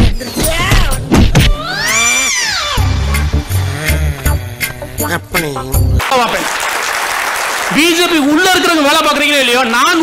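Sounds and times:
bass-heavy music beat: 0:02.6 - 0:06.0.

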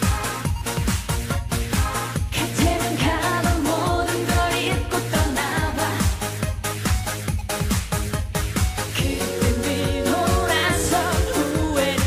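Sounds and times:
dance backing track with drums: 0:00.0 - 0:12.0
woman singing: 0:02.3 - 0:06.2, 0:08.9 - 0:12.0.

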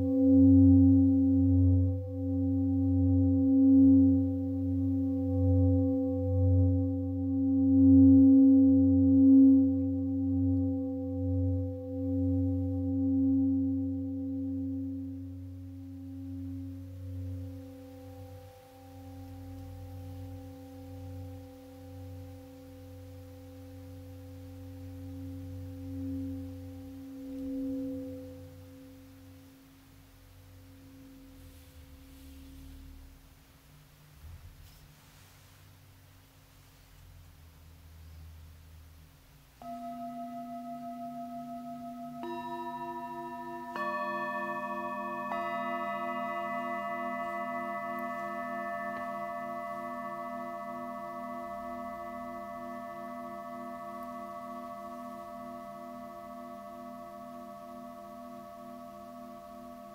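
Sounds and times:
deep singing bowl ringing: 0:00.0 - 0:33.4, 0:39.6 - 0:59.9.

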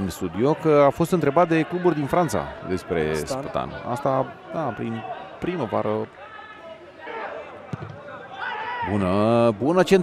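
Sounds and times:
ball being kicked: 0:07.7 - 0:08.1.

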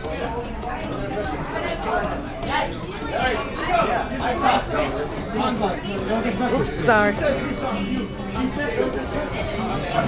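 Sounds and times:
crowd chatter in a bar: 0:00.0 - 0:10.0.

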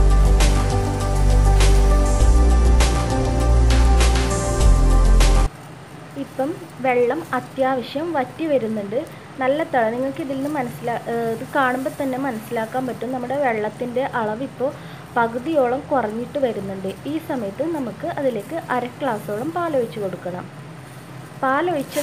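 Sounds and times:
music track: 0:00.0 - 0:05.5
person talking: 0:06.2 - 0:20.5, 0:21.4 - 0:22.0.

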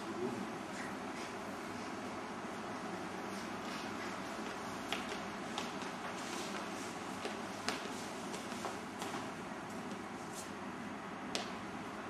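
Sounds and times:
steady hiss and room noise: 0:00.0 - 0:12.0.

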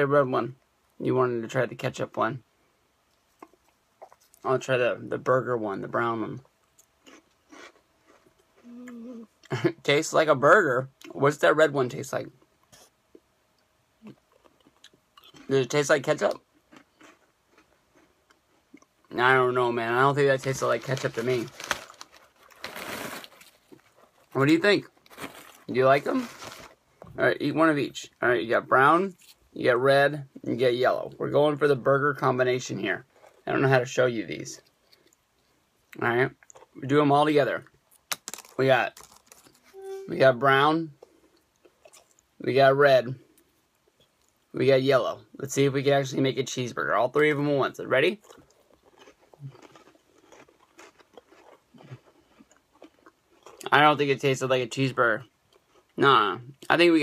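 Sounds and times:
crackers being chewed: 0:03.1 - 0:04.4, 0:06.4 - 0:08.9, 0:14.0 - 0:15.5, 0:16.3 - 0:19.0, 0:38.0 - 0:39.7, 0:48.1 - 0:53.8
foil snack bag rustling: 0:20.2 - 0:26.8, 0:38.2 - 0:39.8.

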